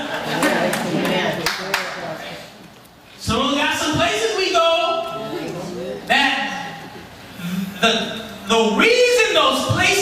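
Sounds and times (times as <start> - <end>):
man preaching into a microphone: 3.2 - 5.4, 6.0 - 6.8, 7.7 - 10.0.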